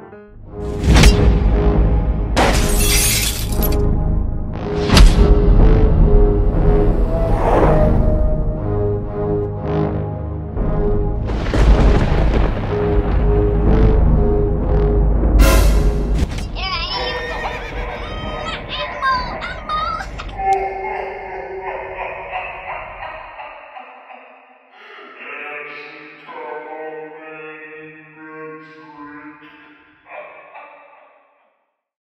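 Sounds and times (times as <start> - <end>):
background music: 0.0 - 23.4
glass shattering: 2.4 - 3.8.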